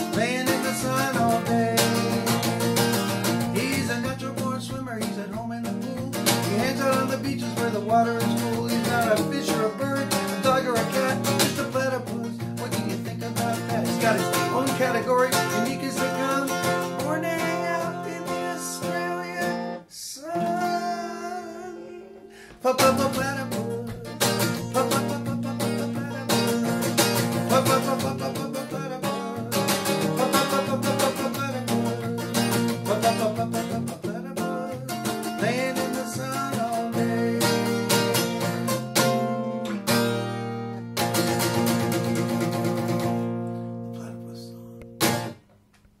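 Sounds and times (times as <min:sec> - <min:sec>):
acoustic guitar strumming: 0:00.0 - 0:45.6.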